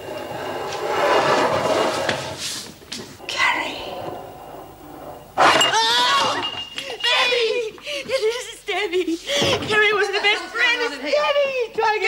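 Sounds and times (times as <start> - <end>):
glass tumbler shattering: 5.4 - 7.1
women shrieking: 5.5 - 6.5.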